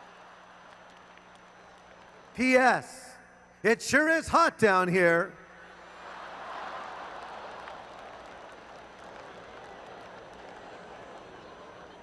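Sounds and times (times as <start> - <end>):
audience laughing and clapping: 5.7 - 12.0.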